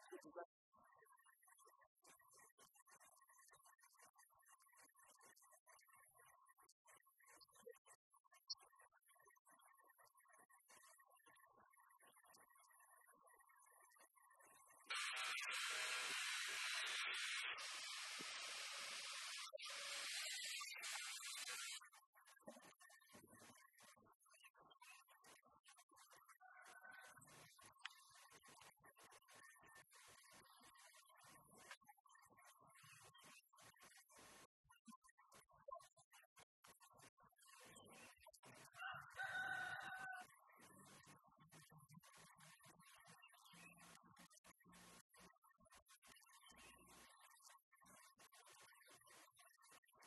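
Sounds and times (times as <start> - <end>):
steady hiss: 14.9 - 21.8
rooster crowing: 38.8 - 40.3.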